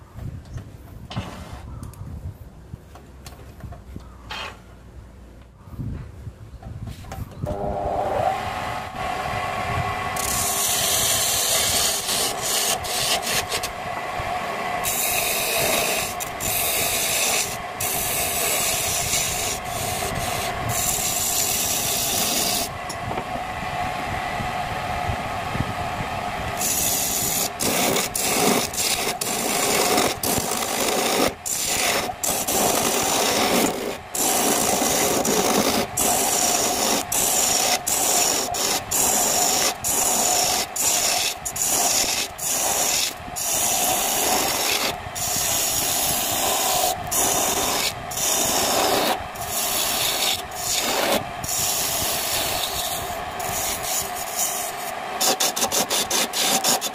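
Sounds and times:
wood lathe humming: 7.6s - 56.9s
chisel scraping spinning wood: 10.1s - 13.8s, 14.5s - 23.0s, 26.5s - 56.9s.

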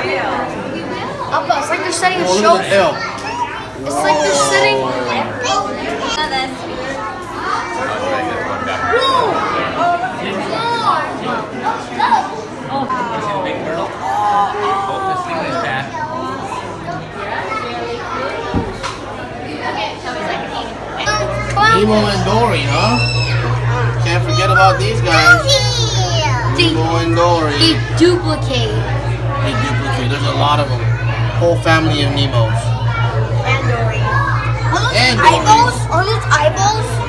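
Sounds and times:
children talking and calling out: 0.0s - 13.0s, 13.9s - 37.0s
chatter of visitors: 0.0s - 37.0s
steady low hum: 20.6s - 37.0s.

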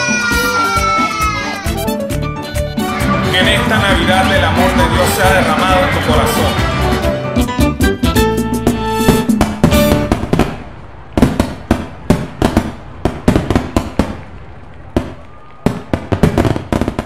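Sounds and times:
music: 0.0s - 10.3s
fireworks bangs and crackles: 2.9s - 6.7s, 9.1s - 17.0s.

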